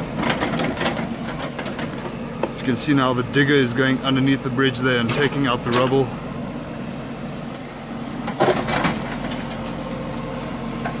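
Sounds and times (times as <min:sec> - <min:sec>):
backhoe clatter: 0:00.0 - 0:06.4, 0:07.6 - 0:11.0
diesel engine running: 0:00.0 - 0:11.0.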